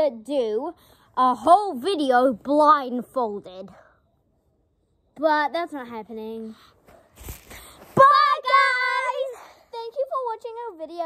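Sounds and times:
girl singing high notes: 0:08.0 - 0:10.4.

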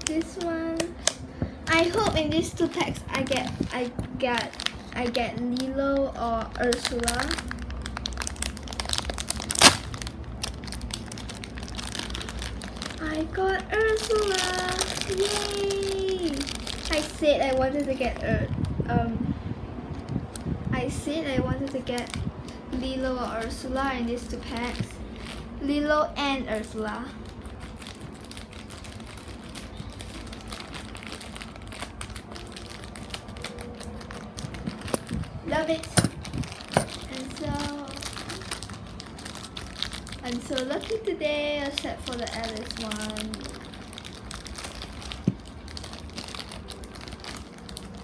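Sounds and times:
plastic wrapper crinkling: 0:00.0 - 0:18.8, 0:19.9 - 0:48.0
low steady background noise: 0:00.0 - 0:48.0.

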